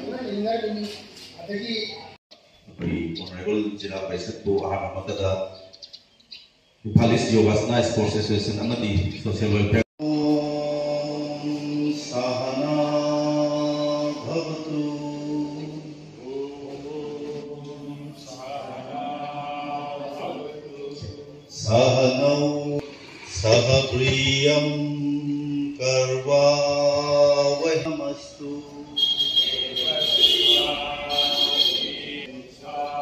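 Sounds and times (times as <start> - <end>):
man chanting into a microphone: 20.0 - 28.9.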